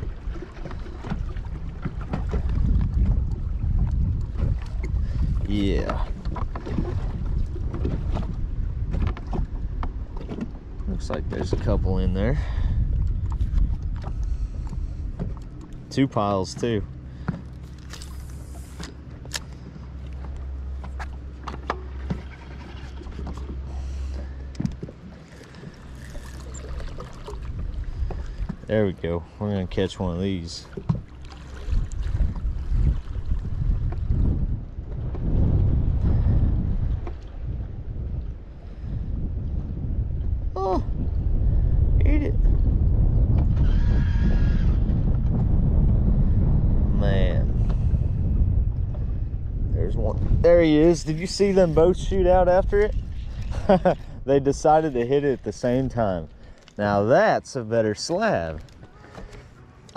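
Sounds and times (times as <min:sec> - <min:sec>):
wind buffeting microphone: 0:00.0 - 0:57.4.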